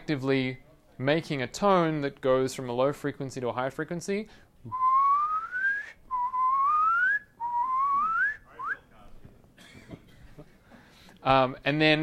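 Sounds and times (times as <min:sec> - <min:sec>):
man whistling rising glides: 0:04.7 - 0:08.8.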